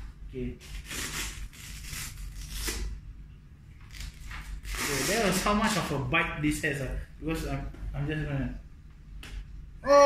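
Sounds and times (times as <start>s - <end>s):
velcro ripping: 0.7s - 2.9s, 3.9s - 5.5s.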